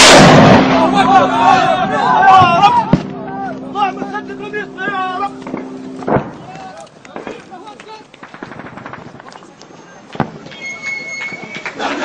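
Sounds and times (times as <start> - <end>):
rocket launch blast and whoosh: 0.0 - 1.0
men shouting: 0.7 - 5.4.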